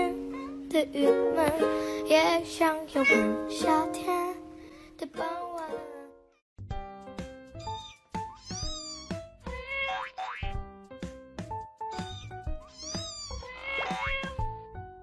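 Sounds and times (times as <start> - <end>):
background music with plucked notes: 0.0 - 15.0
kitten mewing: 3.0 - 3.3, 7.6 - 10.4, 11.9 - 14.5.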